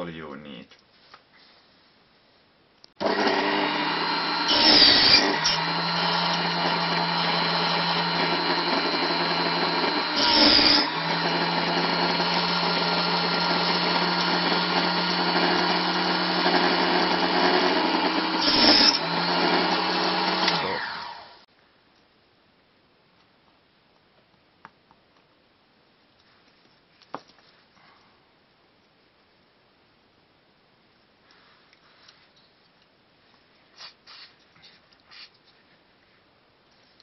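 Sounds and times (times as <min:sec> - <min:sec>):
saw blade cutting wood: 0:03.0 - 0:21.4
table saw motor running: 0:03.0 - 0:21.4.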